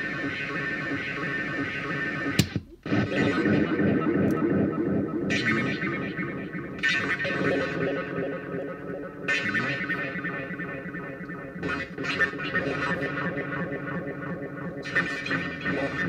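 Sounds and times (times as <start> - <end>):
distorted echoing electronic drone: 0.0 - 16.0.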